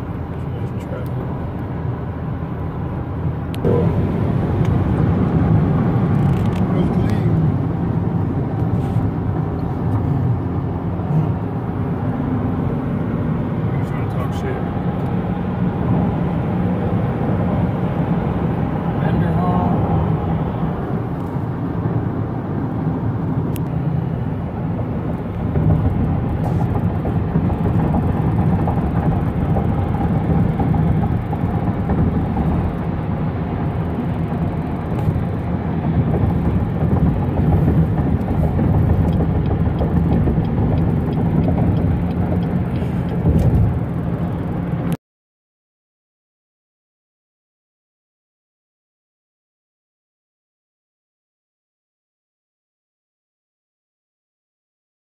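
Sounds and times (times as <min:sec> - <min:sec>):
tyres rumbling on road: 0:00.0 - 0:45.0
wind noise: 0:19.8 - 0:44.7.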